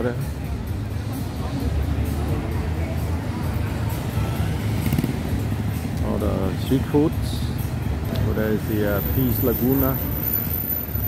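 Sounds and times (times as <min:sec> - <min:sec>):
faint voices: 0:00.0 - 0:07.2
rumble of passing traffic: 0:00.0 - 0:11.0.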